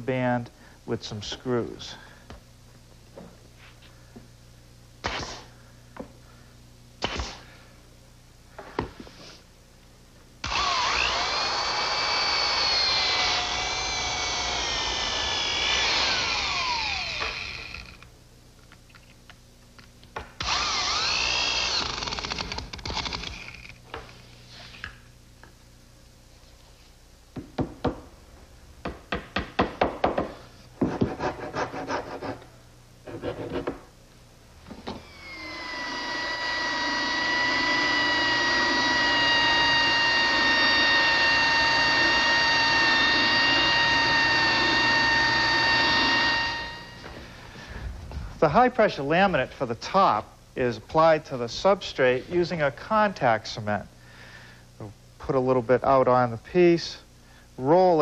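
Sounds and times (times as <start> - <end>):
drill running: 10.4 - 18.1, 20.4 - 23.7, 34.9 - 47.1
motor winding down: 10.4 - 18.1, 20.4 - 23.7, 34.9 - 47.0
power tool motor whining: 10.4 - 18.1, 20.4 - 23.7, 34.8 - 47.1.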